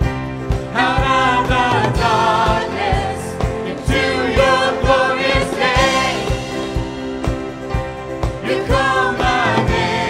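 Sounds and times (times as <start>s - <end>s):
keyboard: 0.0s - 10.0s
voices singing in harmony: 0.7s - 7.2s, 8.2s - 10.0s.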